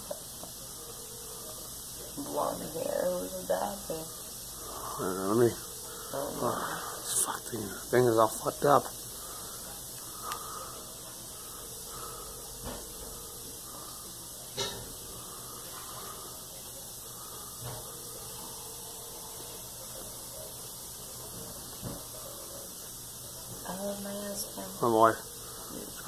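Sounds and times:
steady hiss: 0:00.0 - 0:26.0.

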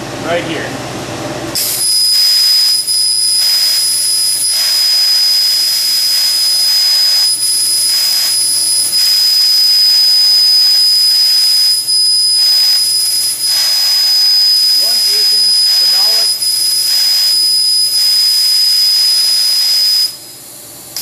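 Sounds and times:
high-pitched steady whine: 0:01.6 - 0:21.0
laser cutter air hiss: 0:01.6 - 0:21.0.

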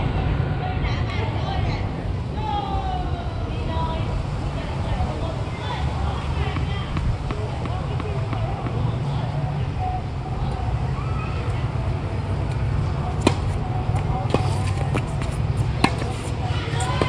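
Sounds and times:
steady low rumble: 0:00.0 - 0:17.0
tennis racket hitting ball: 0:06.4 - 0:08.8, 0:13.2 - 0:13.6, 0:14.3 - 0:17.0.

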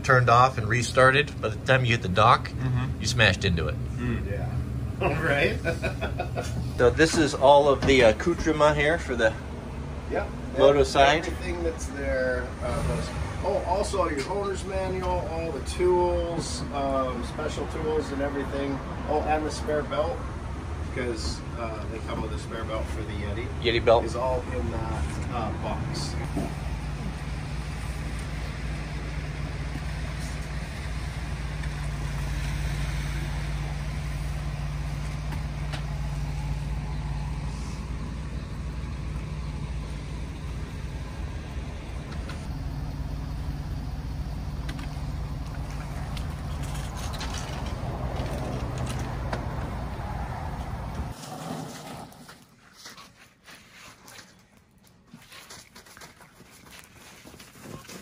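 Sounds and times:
vehicle engine idling: 0:00.0 - 0:51.2.

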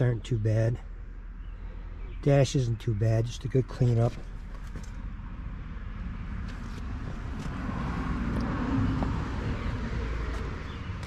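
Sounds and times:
steady low rumble: 0:00.0 - 0:11.0
car passing by: 0:06.6 - 0:11.0.

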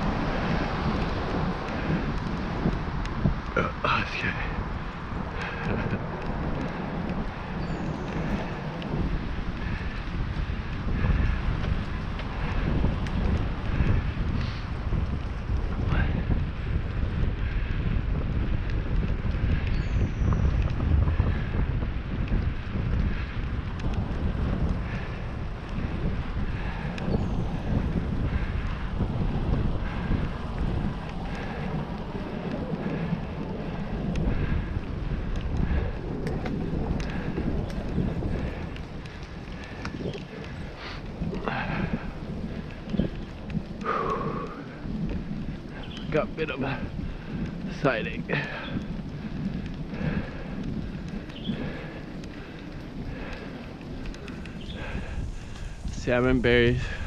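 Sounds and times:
bicycle tyres on wet pavement: 0:00.0 - 0:57.0
wind buffeting microphone: 0:00.0 - 0:57.0.

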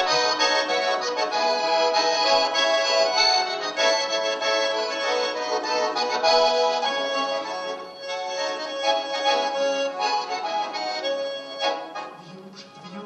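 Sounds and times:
button accordion folk melody: 0:00.0 - 0:13.0.

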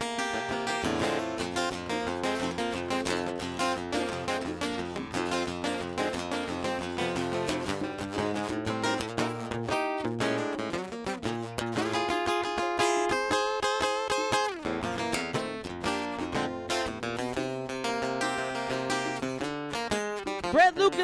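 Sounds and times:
blues guitar playing: 0:00.0 - 0:21.0.

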